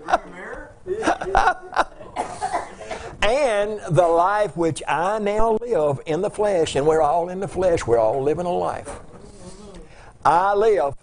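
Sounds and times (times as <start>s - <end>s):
person laughing: 0.9s - 2.8s.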